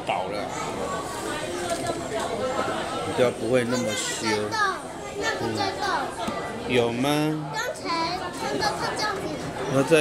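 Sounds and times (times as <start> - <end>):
young child speaking: 3.7 - 6.2, 7.5 - 9.7.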